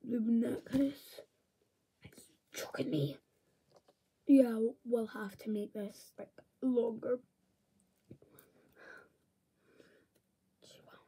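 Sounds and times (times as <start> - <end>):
faint whispering: 2.0 - 3.2, 10.6 - 11.0.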